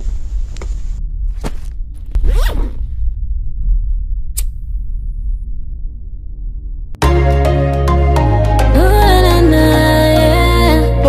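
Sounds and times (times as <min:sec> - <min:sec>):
deep low rumble: 0:00.0 - 0:07.0
bag zipper pulled open: 0:02.2 - 0:02.8.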